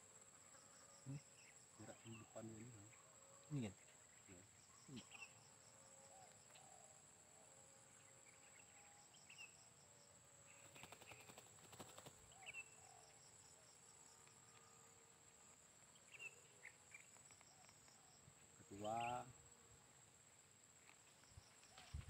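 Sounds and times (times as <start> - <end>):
bird chirps: 1.1 - 5.5, 10.5 - 13.2, 15.9 - 19.3
high-pitched insect drone: 3.5 - 7.0
dove wings flapping: 10.6 - 12.4.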